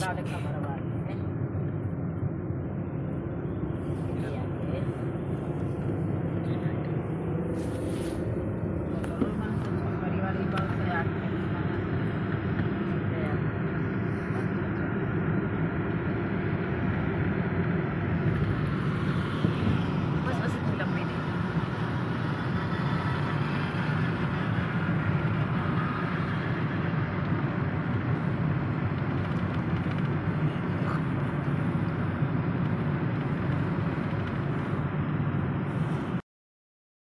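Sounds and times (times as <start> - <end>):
car road and engine noise: 0.0 - 36.2.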